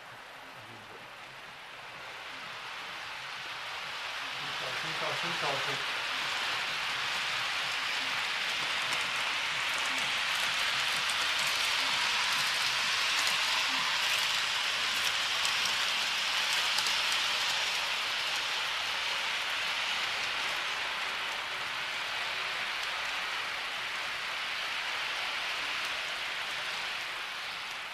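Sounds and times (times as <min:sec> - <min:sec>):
model train wheels on rail: 0:00.0 - 0:27.9.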